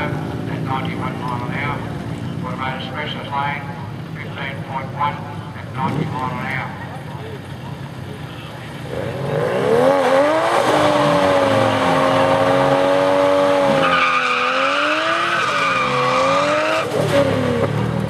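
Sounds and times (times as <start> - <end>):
car engine revving: 8.8 - 18.0
tyres spinning and squealing: 10.0 - 17.2.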